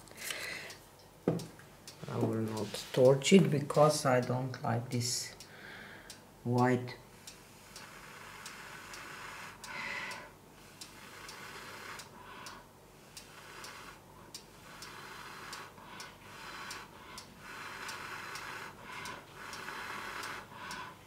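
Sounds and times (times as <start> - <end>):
soft hiss: 0.0 - 21.0.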